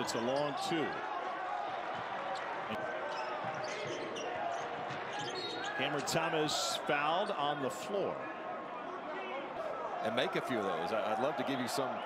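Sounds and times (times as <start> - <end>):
basketball bouncing on court: 3.2 - 5.5.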